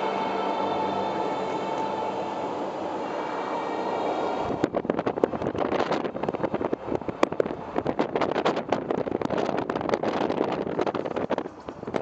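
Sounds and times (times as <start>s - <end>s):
car engine and tyres on road: 0.0s - 12.0s
wind buffeting microphone: 4.3s - 12.0s.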